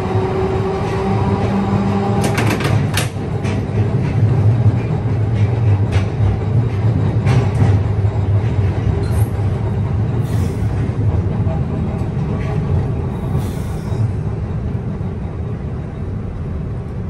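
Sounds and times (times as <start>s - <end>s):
streetcar rumbling on track: 0.0s - 17.0s.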